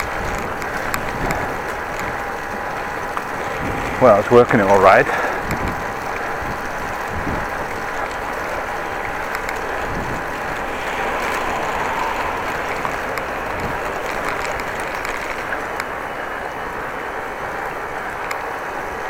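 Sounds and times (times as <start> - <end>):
bicycle tyres on wet road: 0.0 - 19.0
air rushing over microphone: 8.2 - 15.8.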